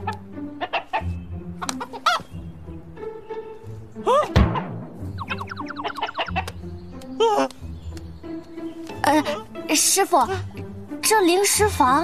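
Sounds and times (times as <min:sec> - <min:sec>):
background music: 0:00.0 - 0:12.0
chicken clucking: 0:00.6 - 0:01.0, 0:05.2 - 0:06.5.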